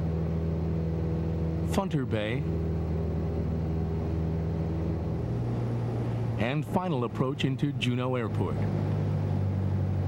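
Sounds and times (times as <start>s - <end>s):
propeller aircraft engine drone: 0.0s - 10.0s.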